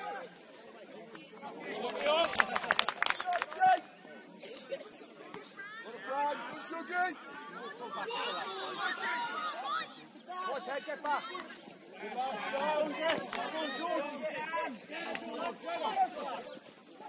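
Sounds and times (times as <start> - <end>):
players and spectators shouting: 5.6 - 17.0.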